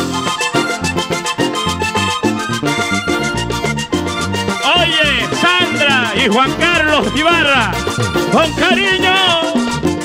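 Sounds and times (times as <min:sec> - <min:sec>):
button accordion melody: 0:00.0 - 0:10.0
electric bass: 0:00.0 - 0:10.0
hand drum and percussion: 0:03.9 - 0:10.0.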